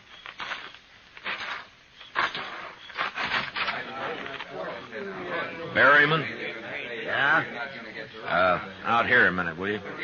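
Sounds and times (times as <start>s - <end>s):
faint men's voices murmuring: 3.5s - 10.0s.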